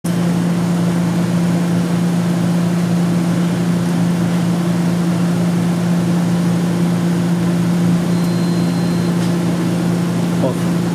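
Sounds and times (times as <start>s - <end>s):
electrical hum: 0.1s - 10.9s
thin high whine: 7.8s - 10.5s.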